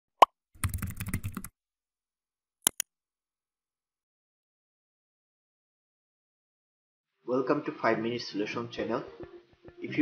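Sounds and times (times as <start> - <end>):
keyboard typing clicks: 0.6 - 1.5.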